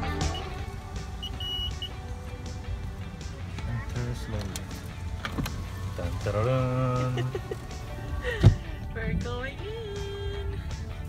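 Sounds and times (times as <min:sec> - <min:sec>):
background music: 0:00.0 - 0:11.0
low idling rumble: 0:00.0 - 0:11.0
keypad beeps: 0:01.2 - 0:02.0.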